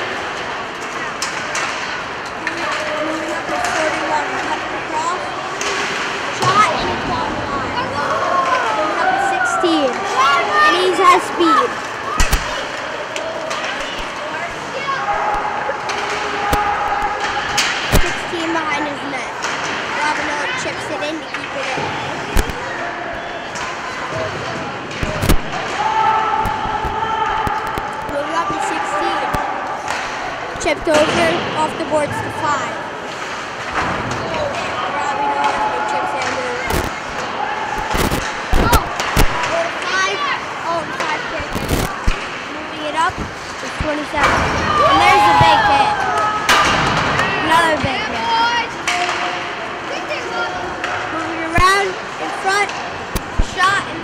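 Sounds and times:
hockey sticks and puck cracking: 0.0 - 54.0
echoing shouts: 5.8 - 17.9, 25.5 - 30.6, 34.4 - 41.3, 44.2 - 51.2.

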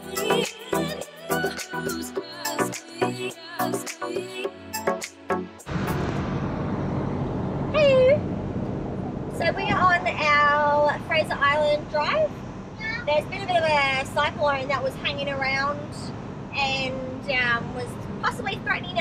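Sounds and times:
music: 0.0 - 5.7
truck engine and tyres from cab: 5.7 - 19.0.

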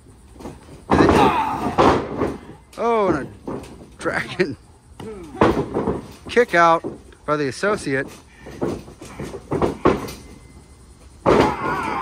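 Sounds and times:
bodies thudding on ring mat: 0.4 - 4.0, 4.9 - 7.1, 8.0 - 12.0.

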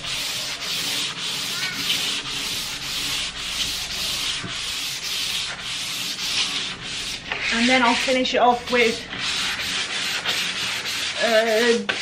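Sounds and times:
sandpaper rubbing on wood: 0.0 - 12.0.

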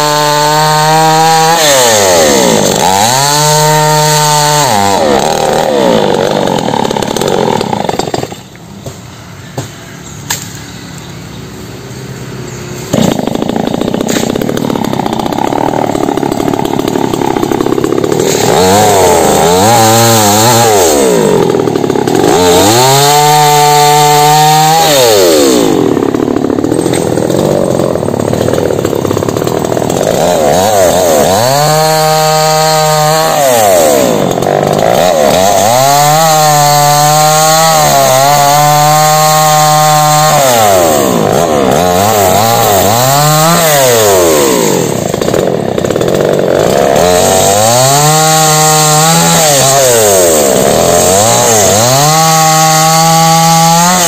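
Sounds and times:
chainsaw cutting wood: 0.0 - 9.0, 12.8 - 54.0.

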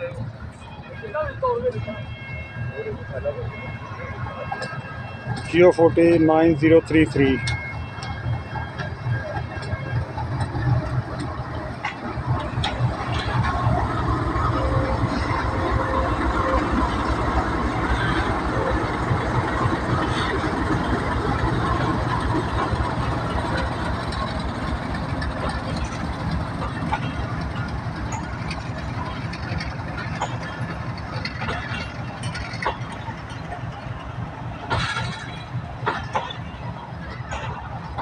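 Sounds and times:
locomotive engine drone: 0.0 - 38.0
wheels clicking over rail joints: 4.4 - 38.0.

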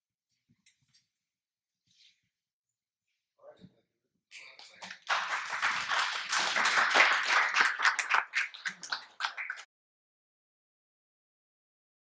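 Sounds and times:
audience applauding: 4.4 - 9.7.

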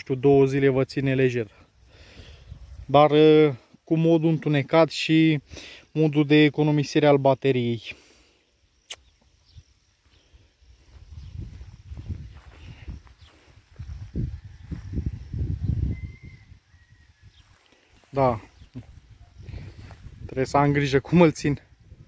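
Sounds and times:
sharp click: 8.8 - 9.2
footsteps on soft dirt: 9.2 - 15.3, 17.3 - 20.4.

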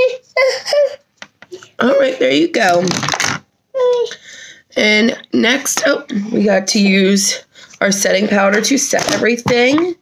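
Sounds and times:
woman speaking: 1.8 - 3.1, 4.7 - 10.0.

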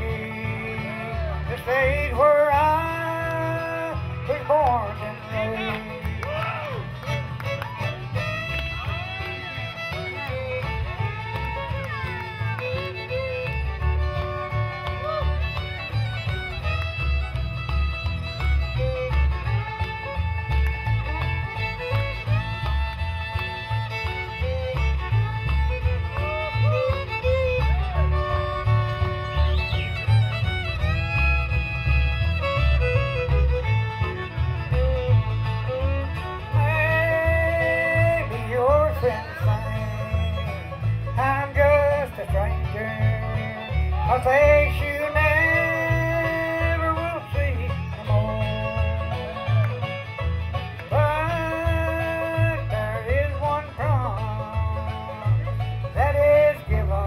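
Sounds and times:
bluegrass band playing: 0.0 - 57.0
fiddle melody: 0.0 - 57.0.

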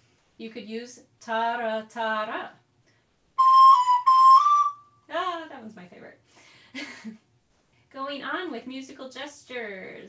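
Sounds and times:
recorder playing notes: 3.4 - 4.9.

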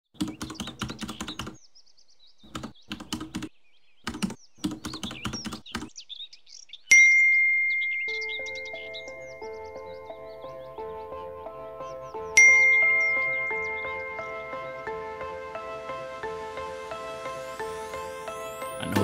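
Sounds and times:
birds chirping faintly: 0.1 - 19.0
keyboard typing clicks: 0.2 - 1.6, 2.5 - 3.5, 4.1 - 5.9
soft melodic music: 6.9 - 19.0.

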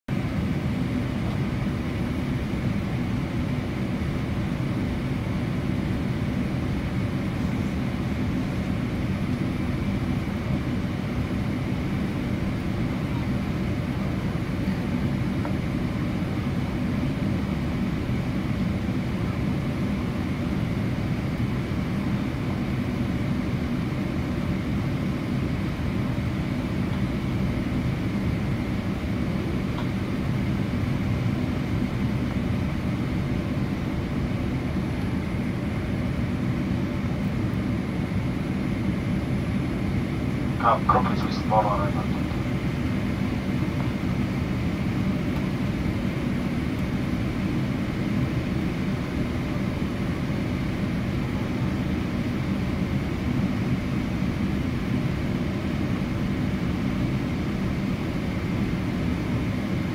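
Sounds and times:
aircraft cabin rumble: 0.2 - 20.3, 24.3 - 50.4.

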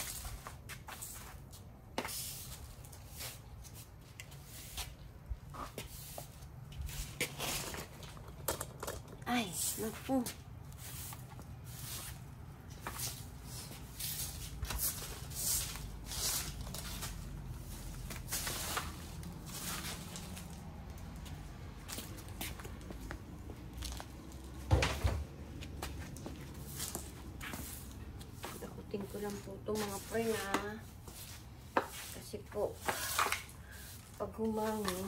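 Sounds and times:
broom sweeping leaves on concrete: 0.0 - 7.8, 9.3 - 20.8, 26.4 - 35.0.

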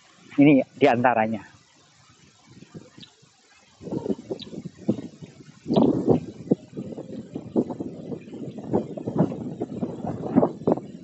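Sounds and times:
wind buffeting microphone: 2.0 - 11.0.

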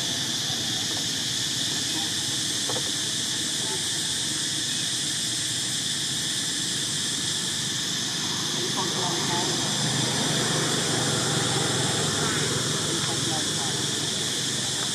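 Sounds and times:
insects droning in trees: 0.0 - 14.9.

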